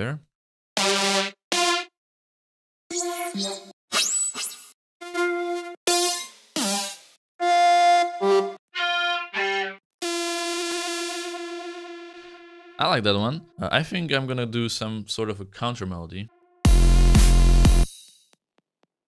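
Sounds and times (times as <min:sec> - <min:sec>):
synthesizer single notes: 0:00.8 - 0:02.0, 0:05.0 - 0:13.6
long held synth note: 0:10.0 - 0:12.8.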